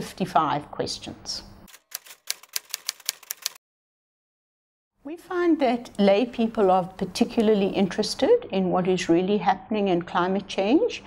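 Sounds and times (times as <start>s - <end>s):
typewriter key clicks: 1.7s - 3.6s.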